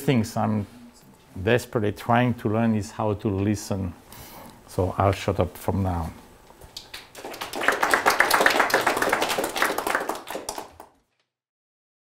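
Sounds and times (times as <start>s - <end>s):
audience applauding: 6.7s - 11.0s.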